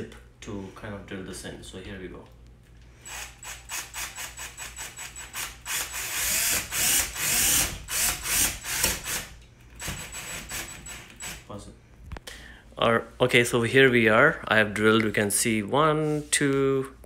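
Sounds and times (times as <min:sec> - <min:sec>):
drill motor whine: 0:03.0 - 0:09.2
drill clutch clicking: 0:03.1 - 0:11.4.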